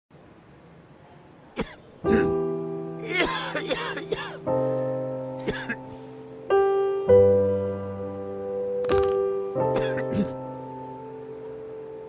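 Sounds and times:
man coughing: 1.6s - 2.4s, 3.1s - 4.4s, 5.5s - 5.8s, 9.8s - 10.4s.

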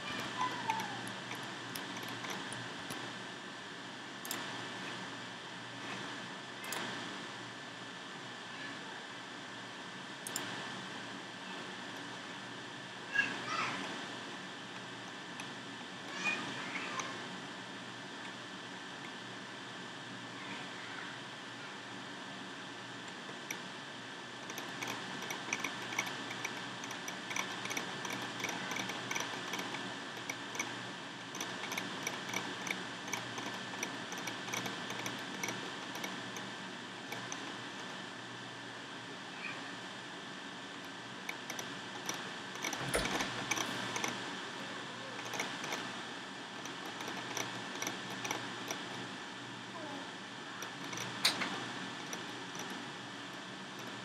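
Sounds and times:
mouse scroll wheel clicks: 0.0s - 3.1s, 4.2s - 4.5s, 10.3s - 10.5s, 24.4s - 36.5s, 37.1s - 38.0s, 41.3s - 44.2s, 45.2s - 45.9s, 46.6s - 49.1s, 50.6s - 52.8s, 53.8s - 54.0s.

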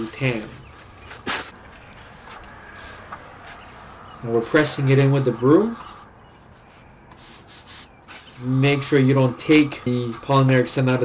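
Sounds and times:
push broom sweeping sand: 0.0s - 8.6s.

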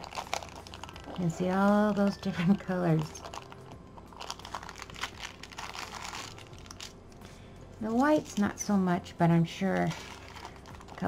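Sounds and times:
paper rustling and crinkling: 0.0s - 7.0s, 9.6s - 11.0s.

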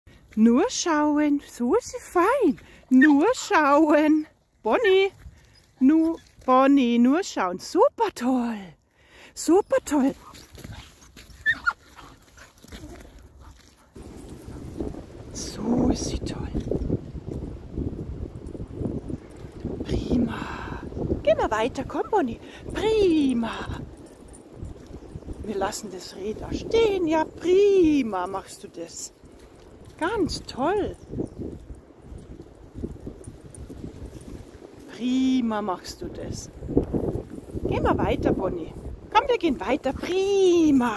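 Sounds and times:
wind rumbling on microphone: 9.6s - 40.9s
dog whining: 11.3s - 11.8s.

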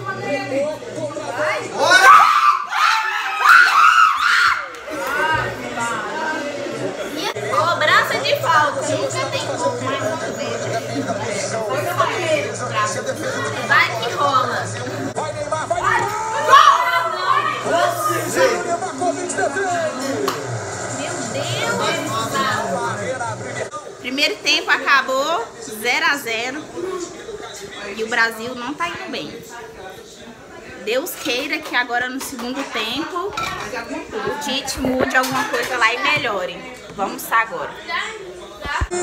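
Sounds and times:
television football commentary: 0.0s - 39.0s
fans screaming and shouting: 1.8s - 6.9s, 15.0s - 23.7s
people talking: 4.8s - 39.0s.

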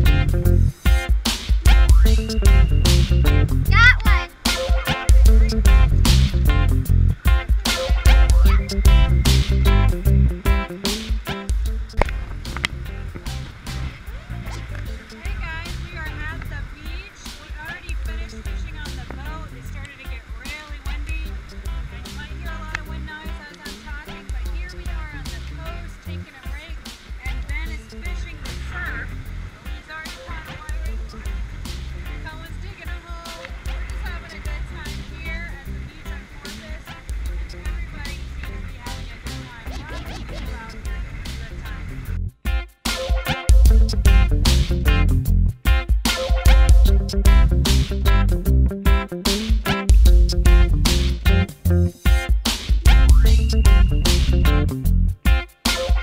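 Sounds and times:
background music with bass line: 0.0s - 56.0s
woman's voice: 3.7s - 4.4s, 15.0s - 31.4s, 32.0s - 42.0s.

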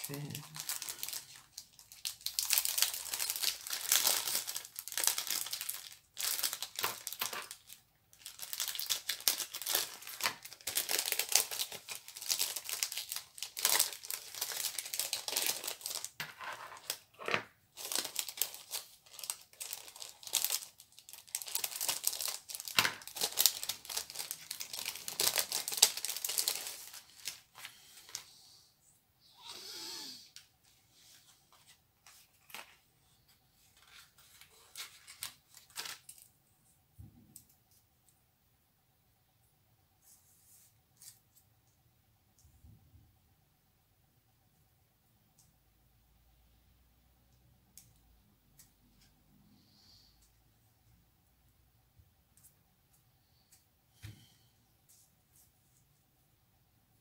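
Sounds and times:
plastic packet crinkling: 0.0s - 28.2s, 33.8s - 36.3s.

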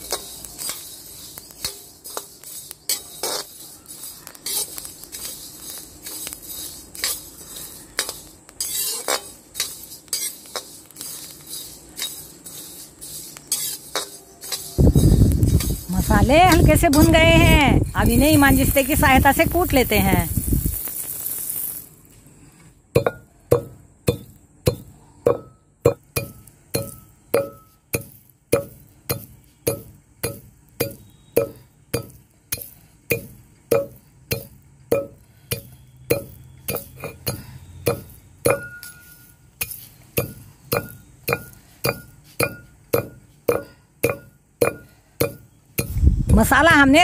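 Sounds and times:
iron pestle pounding in mortar: 23.0s - 38.8s, 40.2s - 46.0s.

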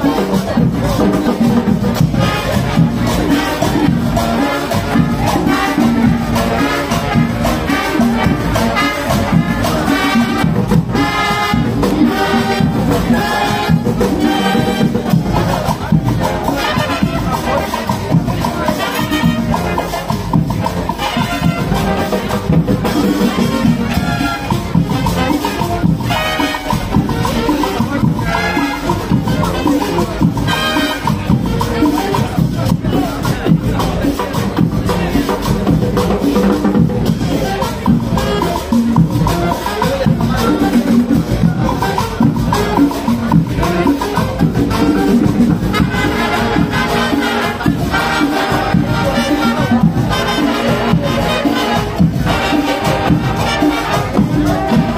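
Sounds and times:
marching band playing: 0.0s - 54.9s.

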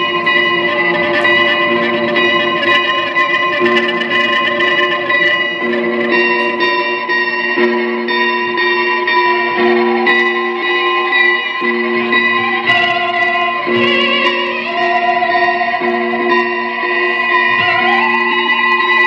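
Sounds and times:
low guitar note: 0.0s - 7.2s
high guitar drone: 0.0s - 19.0s.

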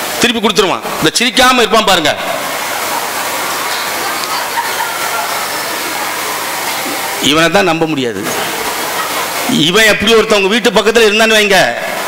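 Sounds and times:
audience applause: 2.2s - 7.4s, 8.3s - 9.7s
laughter: 3.7s - 5.7s, 8.6s - 9.5s.

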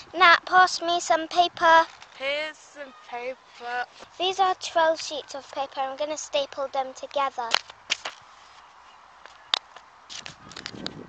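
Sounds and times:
paper handling noise: 7.5s - 8.6s.

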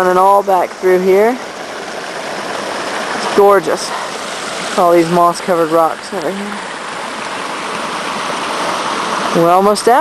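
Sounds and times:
stream running over rocks: 0.0s - 10.0s.

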